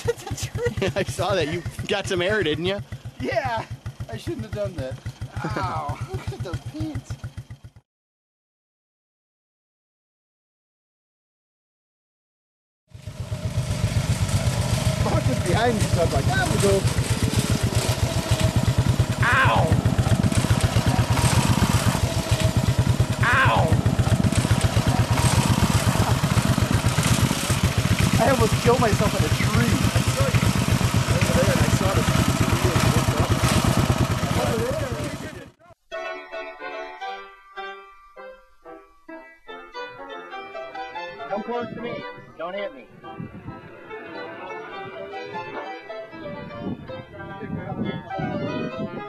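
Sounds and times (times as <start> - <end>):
go-kart engine running: 0.0 - 7.8, 12.9 - 35.6
background music melody: 35.6 - 49.0.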